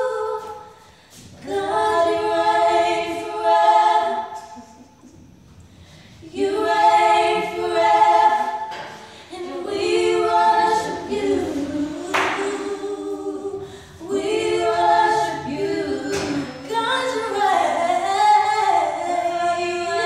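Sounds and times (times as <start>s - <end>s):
women singing a cappella: 0.0s - 20.0s.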